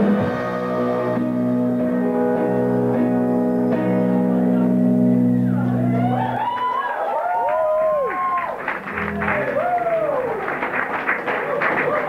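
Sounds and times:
guitars strumming ringing chords: 0.0s - 6.4s
live band playing: 0.0s - 6.4s.

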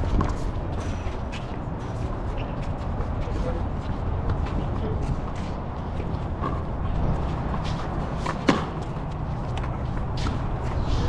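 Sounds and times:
shoes scuffing on court: 0.0s - 11.0s
wind rumble on microphone: 0.0s - 11.0s
ball bouncing on court: 6.0s - 10.4s.

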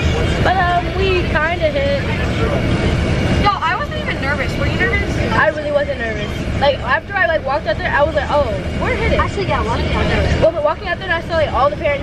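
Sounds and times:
bus engine rumble: 0.0s - 12.0s
girl talking: 3.4s - 6.0s, 6.6s - 12.0s.

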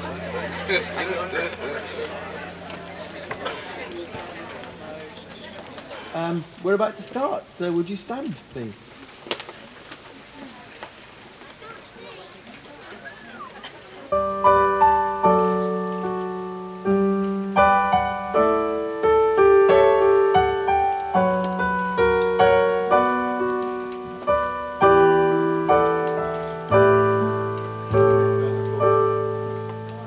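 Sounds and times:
electric piano chords: 0.0s - 5.5s, 14.1s - 30.0s.

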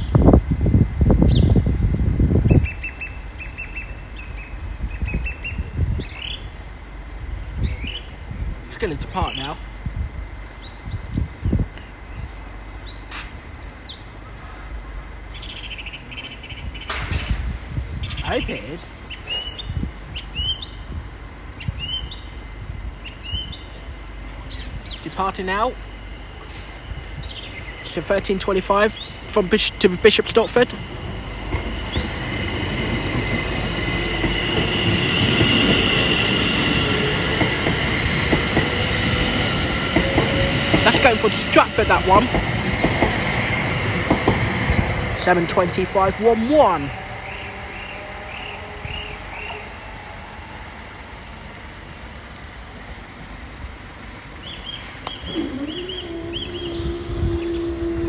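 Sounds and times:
high train whine: 0.0s - 58.0s
train wheels rumbling on rail: 0.0s - 58.0s
small birds chirping: 26.5s - 30.6s, 31.2s - 34.0s, 54.2s - 58.0s.

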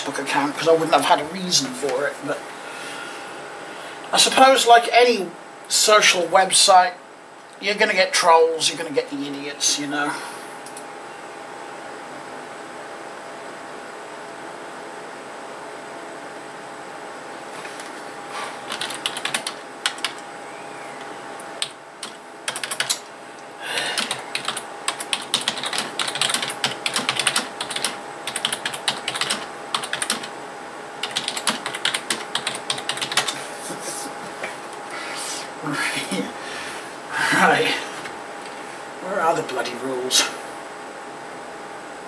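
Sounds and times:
steady hum: 0.0s - 42.0s.

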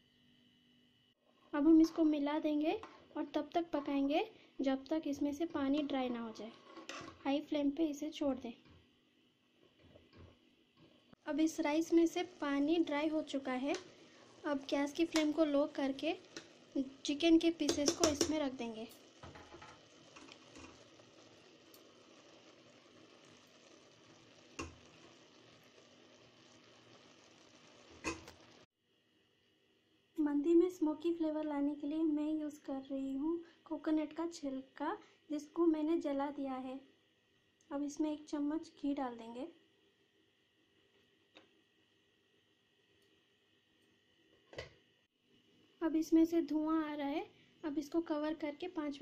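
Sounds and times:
faint hiss of pot cooking: 1.1s - 36.2s.

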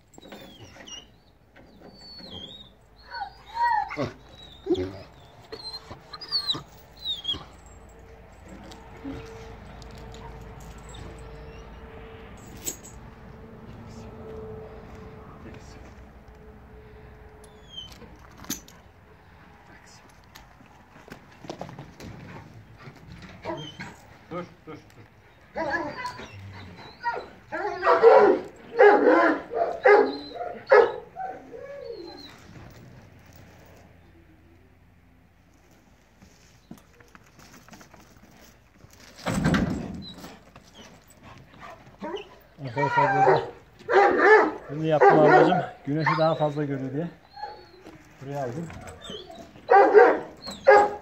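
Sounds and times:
dog barking and whining: 1.9s - 7.8s, 23.3s - 24.1s, 25.4s - 32.7s, 40.1s - 51.0s.

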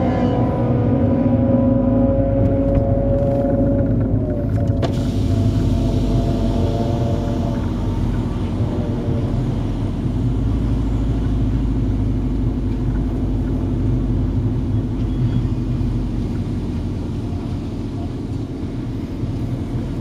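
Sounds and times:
car engine running at low revs: 0.0s - 20.0s.

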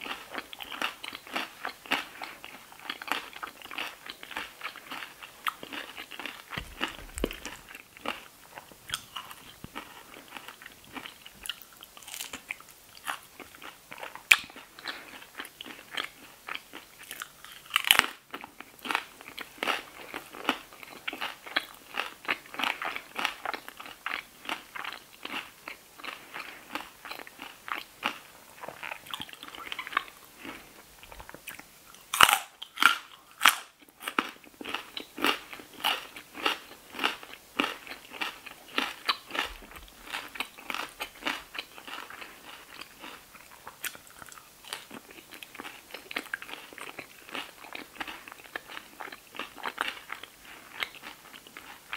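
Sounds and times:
chewing crunchy chips: 0.0s - 51.9s.

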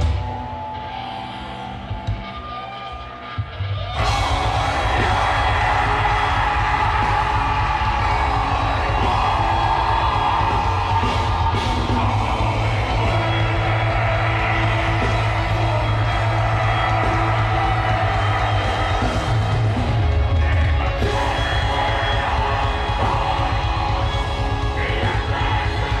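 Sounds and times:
distorted electric guitars: 0.0s - 26.0s
fast drums: 4.0s - 26.0s.

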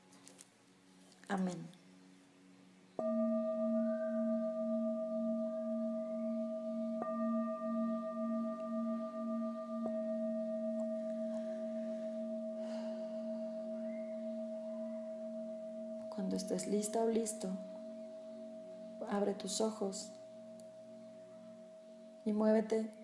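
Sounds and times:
singing bowl ringing: 3.0s - 23.0s.

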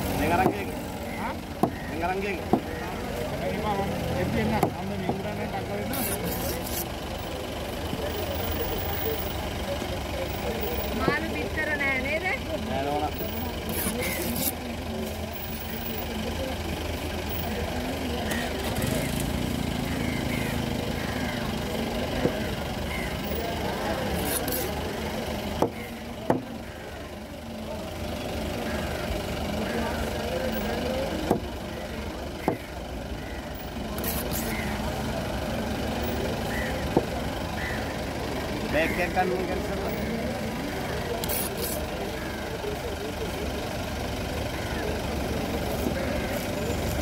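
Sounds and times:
background chatter: 0.0s - 47.0s
low engine rumble: 0.0s - 47.0s
knife chopping on wooden block: 25.6s - 26.5s.

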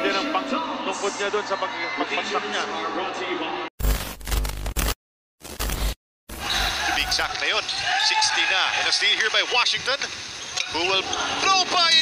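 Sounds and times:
basketball broadcast with voices: 0.0s - 3.7s, 6.4s - 12.0s
bass-heavy static noise bursts: 3.8s - 10.4s.

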